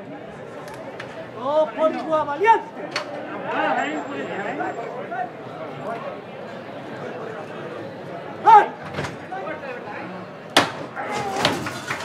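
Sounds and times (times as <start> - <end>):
crowd murmuring: 0.0 - 12.0.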